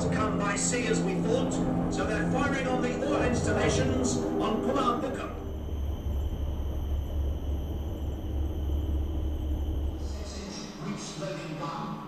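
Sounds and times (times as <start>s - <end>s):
deep rumble over loudspeakers: 0.0s - 12.0s.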